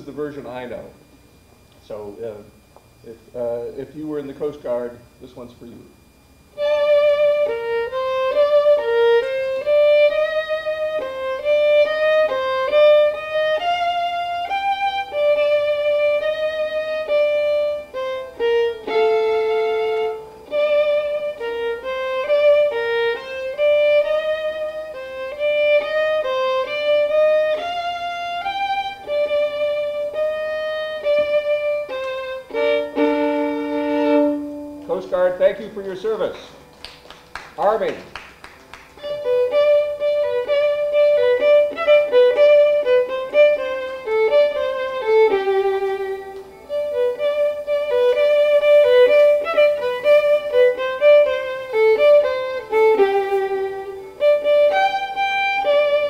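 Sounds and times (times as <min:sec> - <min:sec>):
solo violin playing: 0:06.5 - 0:36.4, 0:37.6 - 0:56.0
person speaking: 0:34.8 - 0:36.7, 0:37.5 - 0:38.2.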